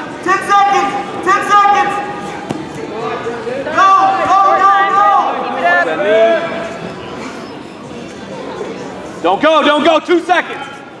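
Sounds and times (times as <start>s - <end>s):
people shouting: 3.7s - 5.5s.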